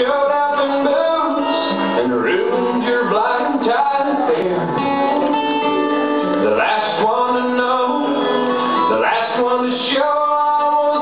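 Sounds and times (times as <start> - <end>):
acoustic guitar strumming: 0.0 - 11.0
person singing: 0.0 - 11.0.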